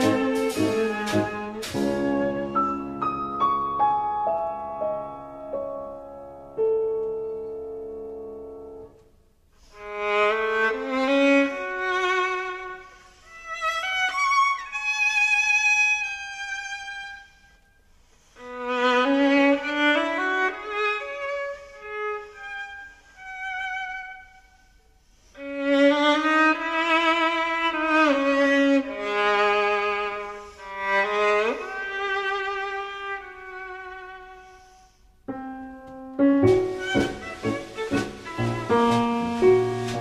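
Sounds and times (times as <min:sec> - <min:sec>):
solo violin melody: 0:00.0 - 0:03.4, 0:09.6 - 0:17.6, 0:18.4 - 0:40.0.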